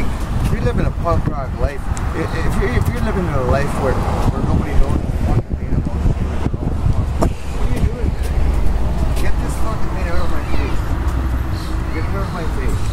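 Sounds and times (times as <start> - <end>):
man talking: 0.0 - 6.8, 7.4 - 8.5, 9.1 - 10.8, 11.6 - 12.9
street traffic rumble: 0.0 - 12.9.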